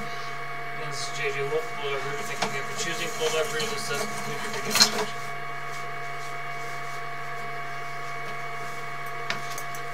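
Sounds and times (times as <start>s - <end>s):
high whining tones: 0.0s - 9.2s
electrical hum: 0.0s - 9.9s.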